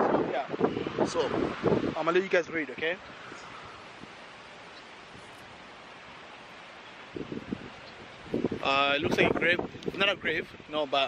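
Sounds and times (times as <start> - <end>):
leaves rustling: 0.0 - 11.0
wind: 0.0 - 11.0.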